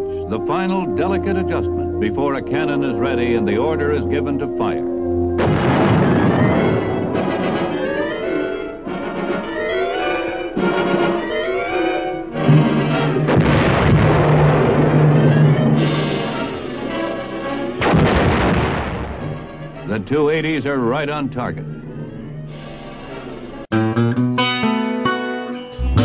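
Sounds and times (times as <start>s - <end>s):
orchestral music with brass: 0.0s - 23.7s
cannon blasts: 5.4s - 8.4s, 13.2s - 19.9s.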